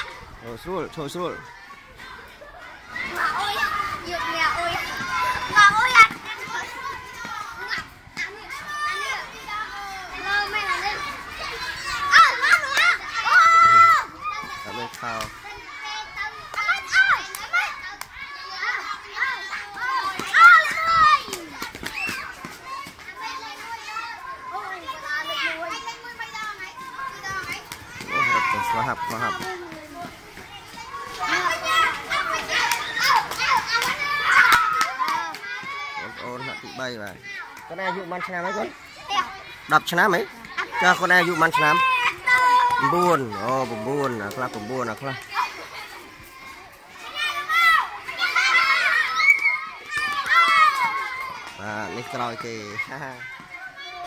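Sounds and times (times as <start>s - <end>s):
children shouting and chattering: 0.0s - 54.0s.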